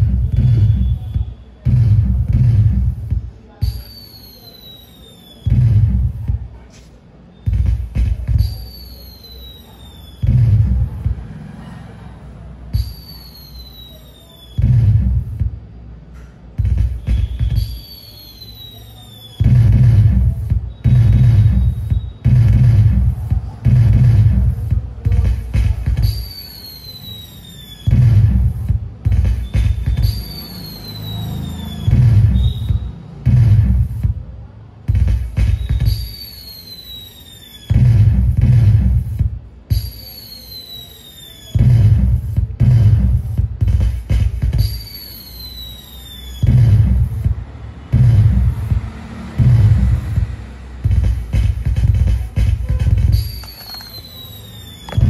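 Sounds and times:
bass-heavy firework sound effect: 0:00.0 - 0:03.8, 0:05.5 - 0:06.4, 0:09.5 - 0:11.7, 0:14.6 - 0:15.7, 0:16.6 - 0:37.0, 0:37.6 - 0:39.9, 0:41.5 - 0:55.0.

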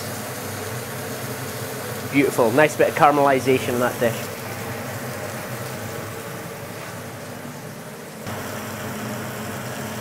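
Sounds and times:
low fan-like hum: 0:00.0 - 0:10.0.

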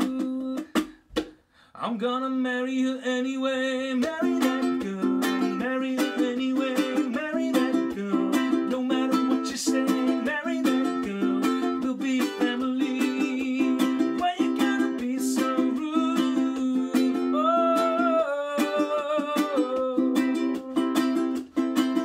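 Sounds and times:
ukulele strumming reggae rhythm: 0:00.0 - 0:01.4, 0:03.5 - 0:22.0.

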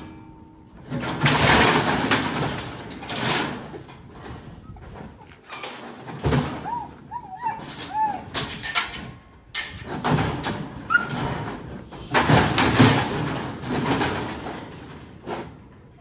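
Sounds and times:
metal chute rattling and clanking: 0:00.0 - 0:06.8, 0:07.6 - 0:15.9
dog whining: 0:04.3 - 0:08.5, 0:10.8 - 0:11.4.

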